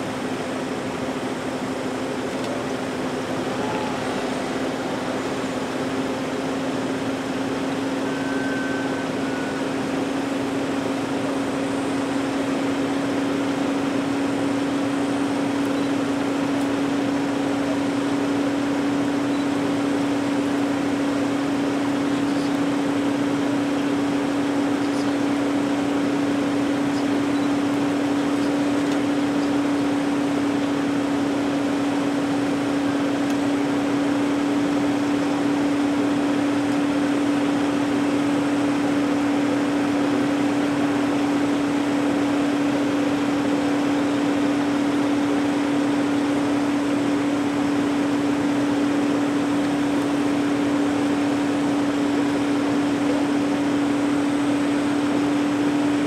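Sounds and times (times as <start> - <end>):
vehicle mechanical hum: 0.0 - 56.0.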